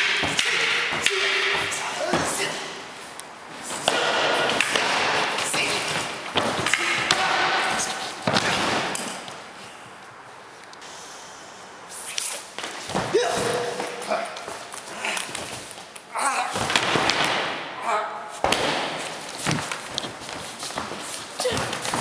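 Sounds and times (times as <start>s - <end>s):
thuds of bodies and staffs: 0.0s - 2.6s, 3.5s - 9.2s, 12.6s - 14.7s, 16.5s - 17.6s, 18.4s - 22.0s
person shouting: 0.2s - 2.8s, 13.1s - 14.4s, 16.1s - 16.6s.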